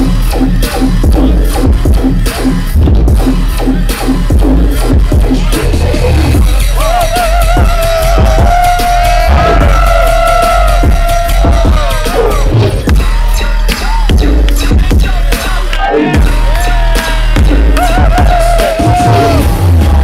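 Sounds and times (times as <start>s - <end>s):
dubstep through sound system: 0.0s - 20.0s.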